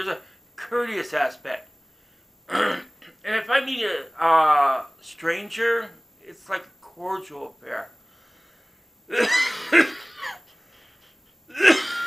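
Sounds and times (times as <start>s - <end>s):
man coughing: 2.5s - 2.9s, 9.1s - 10.4s, 11.5s - 12.0s.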